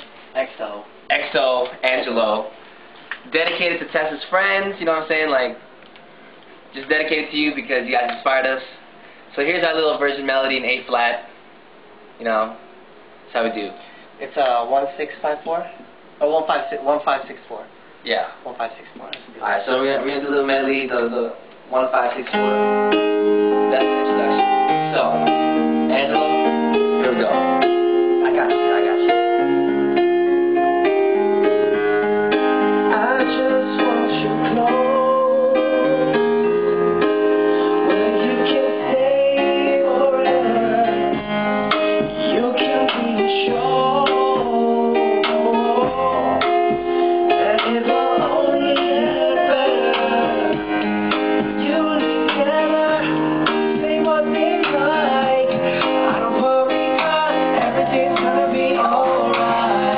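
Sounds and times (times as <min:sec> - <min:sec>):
electronic keyboard: 0:22.0 - 0:59.9
acoustic guitar: 0:22.1 - 0:59.9.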